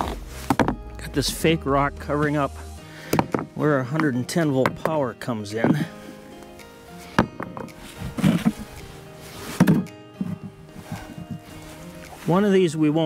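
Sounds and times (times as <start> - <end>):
stones knocking: 0.0 - 0.9, 3.1 - 5.0
soft background music: 0.0 - 13.0.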